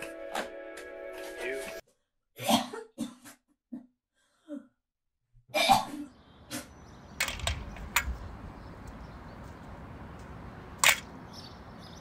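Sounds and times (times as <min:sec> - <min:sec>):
person retching and coughing: 0:02.4 - 0:03.9, 0:05.5 - 0:06.1.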